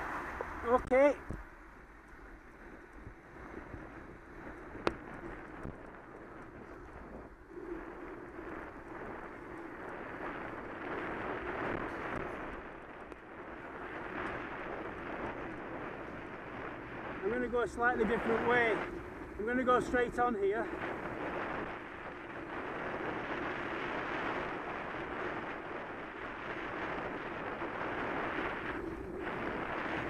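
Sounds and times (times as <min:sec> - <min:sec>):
street traffic: 0:00.0 - 0:03.3, 0:13.5 - 0:22.5
bicycle tyre noise: 0:00.0 - 0:30.0
wind rushing over microphone: 0:00.0 - 0:30.0.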